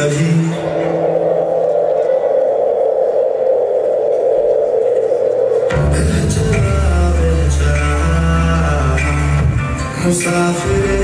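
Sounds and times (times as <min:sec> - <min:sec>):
loud steady drone: 0:00.0 - 0:09.5.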